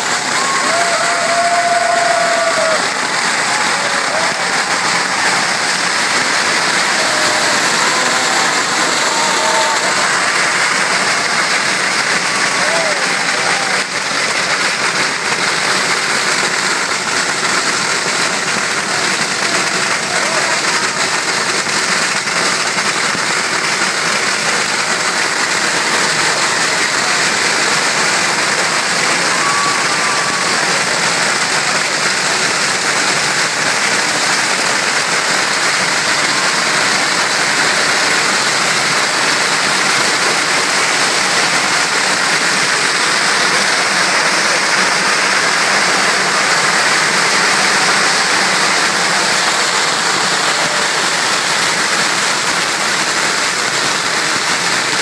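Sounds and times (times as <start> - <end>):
firecrackers crackling: 0.0 - 55.0.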